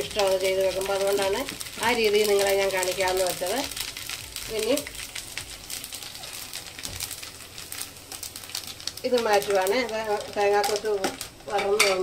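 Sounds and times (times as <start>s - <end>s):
ginger sizzling in oil: 0.0s - 12.0s.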